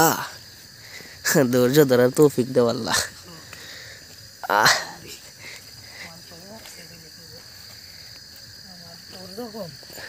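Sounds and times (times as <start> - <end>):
night insects chirring: 0.0 - 10.0.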